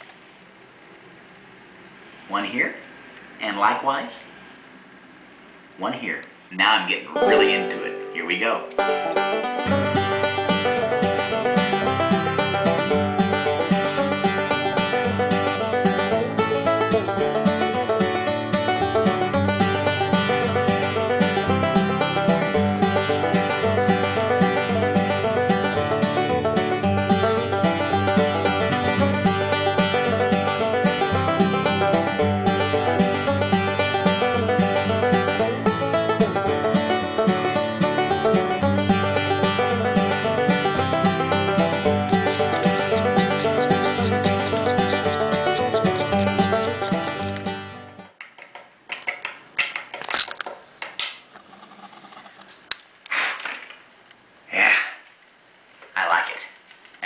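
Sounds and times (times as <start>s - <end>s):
instrumental background music: 7.2s - 48.2s.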